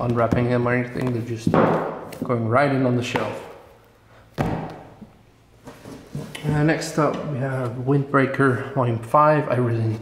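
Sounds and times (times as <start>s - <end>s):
book thud on hard surface: 4.4s - 4.9s.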